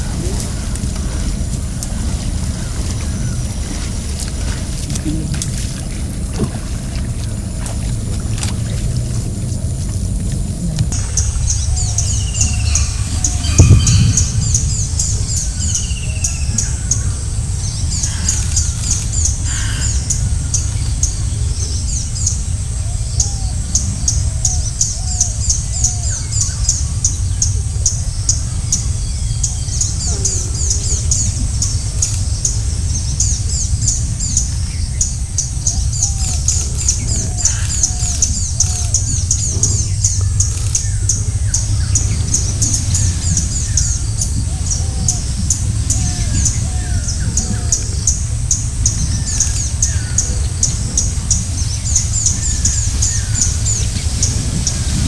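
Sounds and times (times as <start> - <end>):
birds calling: 0.0 - 55.0
high insect whine: 0.0 - 55.0
low rumble: 0.0 - 55.0
short loud low thump: 10.7 - 16.0
rapid high-pitched chirping: 10.9 - 20.0.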